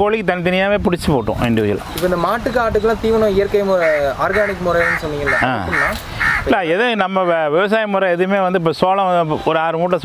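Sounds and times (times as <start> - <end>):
man speaking: 0.0 - 10.0
short bird calls: 3.8 - 6.6.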